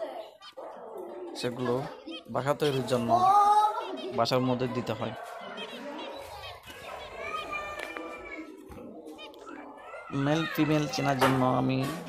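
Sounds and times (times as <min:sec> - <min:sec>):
cage birds chirping: 0:00.0 - 0:12.0.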